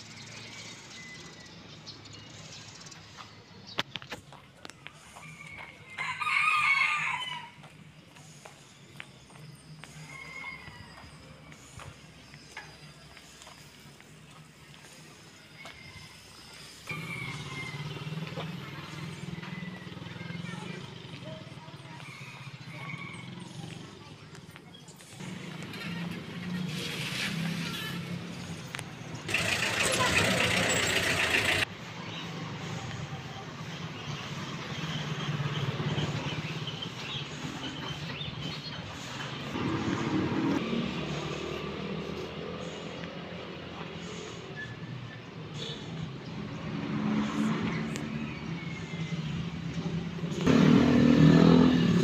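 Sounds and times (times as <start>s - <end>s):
low street background: 0.0s - 52.0s
vehicle driving past: 16.8s - 24.0s, 34.2s - 52.0s
small motorcycle engine running: 25.2s - 31.7s.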